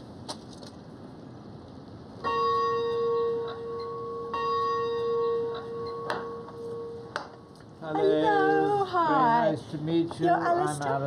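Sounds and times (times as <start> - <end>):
gate bell ringing: 2.2 - 8.8.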